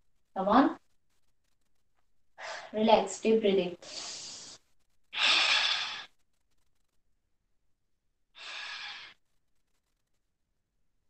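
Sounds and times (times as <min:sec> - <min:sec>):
person exhaling: 0:08.4 - 0:09.2.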